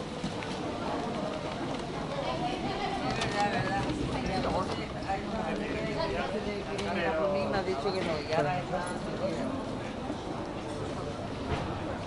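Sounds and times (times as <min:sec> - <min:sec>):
people talking: 0:00.3 - 0:12.0.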